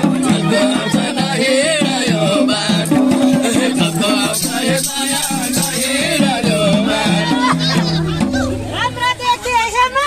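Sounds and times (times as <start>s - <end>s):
hand drum folk music: 0.0s - 9.2s
people's voices: 0.0s - 10.0s.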